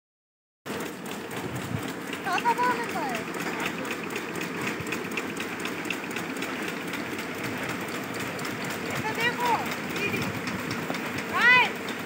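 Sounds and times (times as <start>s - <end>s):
machine mechanical drone: 0.7s - 12.0s.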